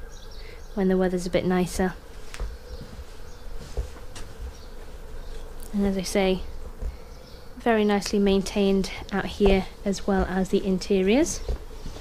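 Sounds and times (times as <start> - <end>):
faint buzzing hum: 0.0 - 12.0.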